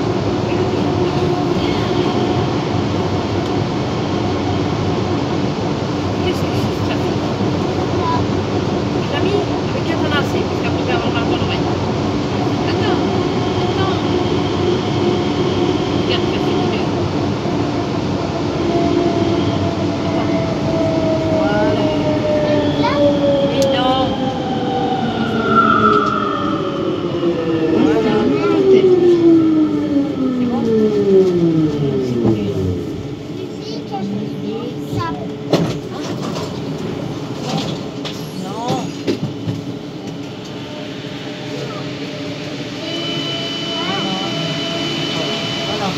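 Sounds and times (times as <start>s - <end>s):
train electric drive whine: 0.0s - 45.9s
train rolling noise: 0.0s - 45.9s.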